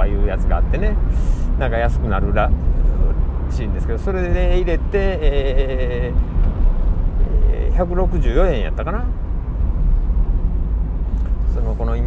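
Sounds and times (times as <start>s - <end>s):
wind rumble in open car: 0.0s - 12.0s.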